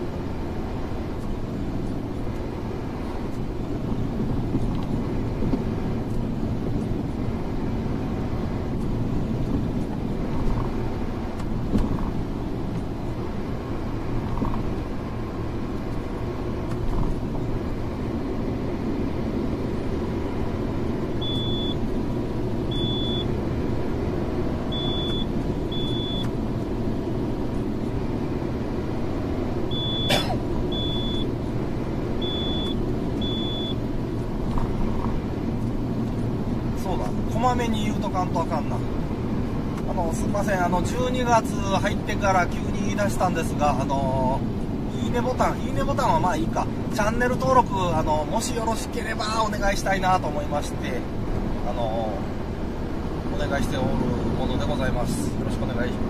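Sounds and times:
truck road and engine rumble: 0.0 - 56.0
short high electronic beeps: 21.2 - 21.8, 24.8 - 26.3, 29.7 - 30.2, 30.8 - 31.3.

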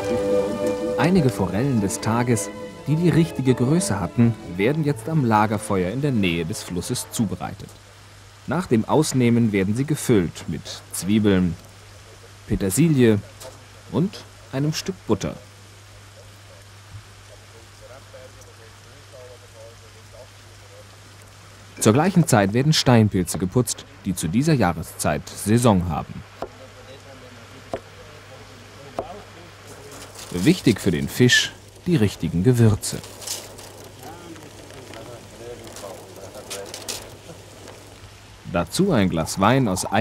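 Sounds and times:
faint hiss: 0.0 - 40.0
faint indistinct voices: 15.4 - 22.4, 26.2 - 40.0.

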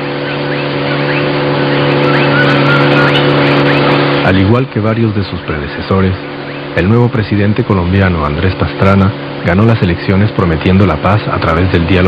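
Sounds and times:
outboard motor droning: 0.0 - 12.0.

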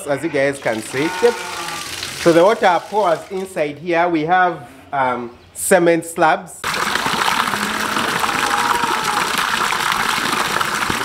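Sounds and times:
water pouring into a trough: 0.6 - 3.5, 6.6 - 11.0.

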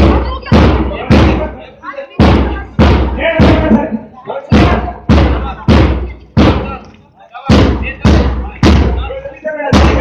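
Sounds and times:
bass drum beating march time: 0.0 - 6.8, 7.5 - 10.0.

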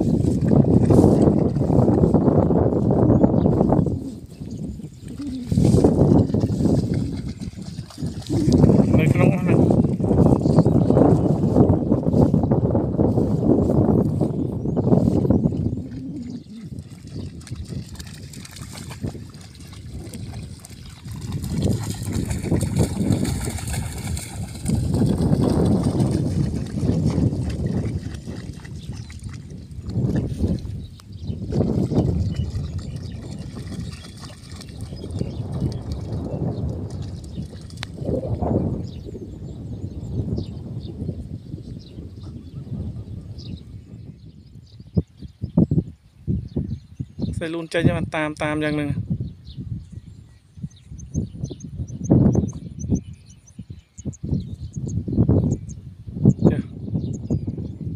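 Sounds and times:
wind buffeting microphone: 0.0 - 57.9
dogs splashing through water: 5.1 - 10.2, 15.9 - 30.8, 31.5 - 38.1.

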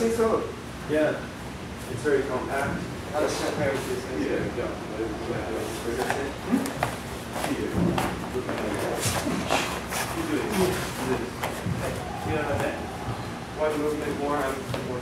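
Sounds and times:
people talking indistinctly: 1.9 - 15.0.

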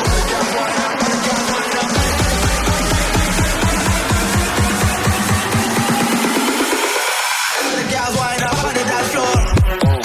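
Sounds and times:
electronic music with bass-drum beat: 0.0 - 10.0.

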